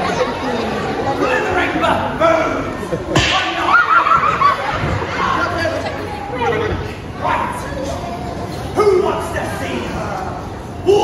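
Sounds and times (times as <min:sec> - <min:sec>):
sharp crack: 0:03.2 - 0:03.7.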